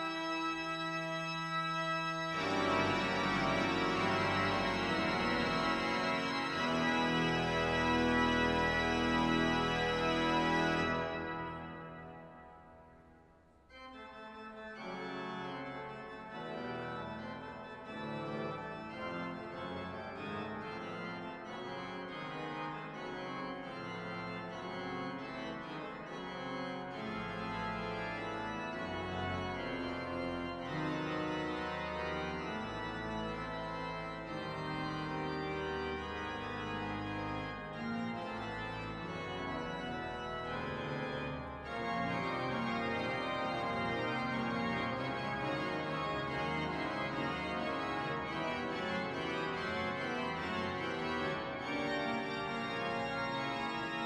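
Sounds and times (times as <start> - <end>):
pipe organ chords: 0.0 - 54.0.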